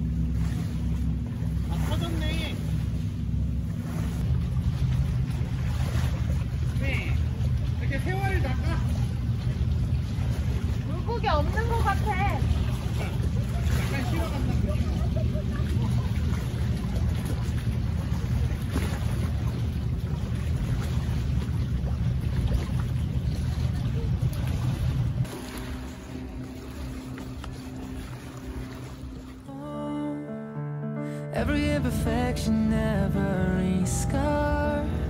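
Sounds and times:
boat engine drone: 0.0 - 35.0
people talking: 1.7 - 2.6, 10.9 - 15.9.

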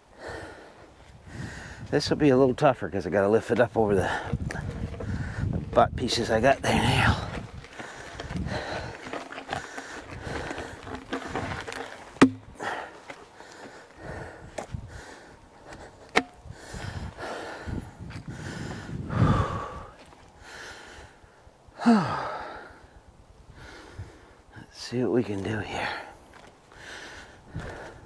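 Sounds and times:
man breathing hard: 0.1 - 1.9, 4.0 - 5.6, 6.7 - 11.6, 12.4 - 24.5, 25.8 - 28.0
boots scuffing on dirt: 3.2 - 14.8, 26.1 - 26.7
low thump: 12.2 - 12.5
sharp knocks: 12.2 - 12.5.

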